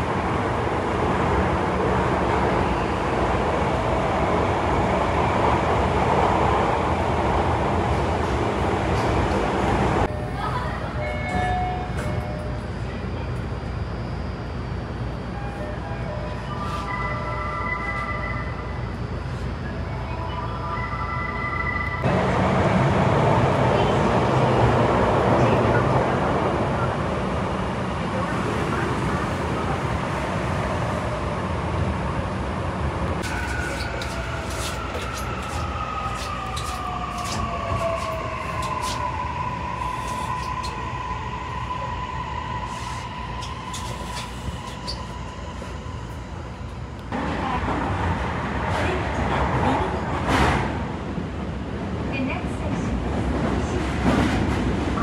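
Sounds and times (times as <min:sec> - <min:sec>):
subway wheels rumbling: 0:00.0 - 0:55.0.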